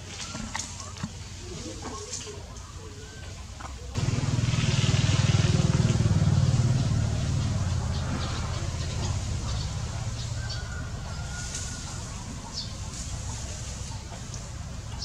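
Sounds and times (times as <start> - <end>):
vehicle engine rumbling: 0.0 - 15.0.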